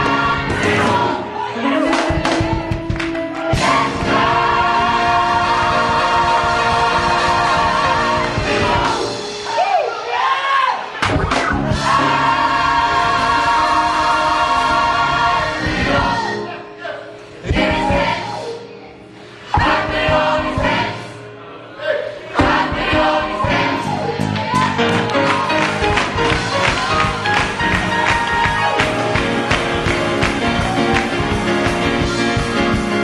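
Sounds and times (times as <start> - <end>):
gospel choir singing: 0.0 - 11.0, 11.6 - 33.0
steady beat: 2.0 - 9.3, 25.8 - 33.0.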